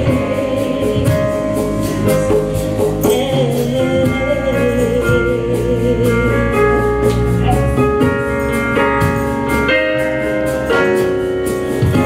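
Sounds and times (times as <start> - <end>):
woman singing with vibrato: 0.0 - 2.4, 3.0 - 7.8
gospel choir singing: 0.0 - 7.7
instrumental accompaniment: 0.0 - 12.0.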